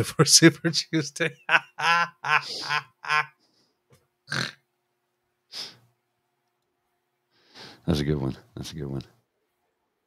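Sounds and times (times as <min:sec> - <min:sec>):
man laughing: 0:00.6 - 0:03.4.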